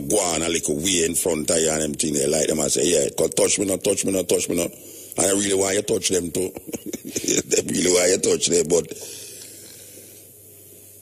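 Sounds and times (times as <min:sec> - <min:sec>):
low steady hum: 0:00.0 - 0:11.0
recording hiss: 0:00.0 - 0:11.0.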